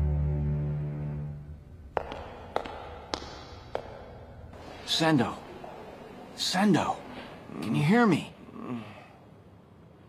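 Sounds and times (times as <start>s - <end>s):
background music: 0.0s - 5.4s
footsteps on hard floor: 1.9s - 4.9s.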